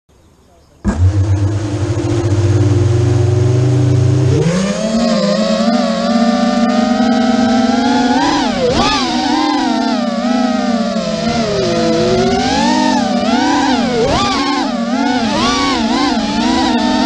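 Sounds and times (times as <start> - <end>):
drone motors whining: 0.8 - 17.0.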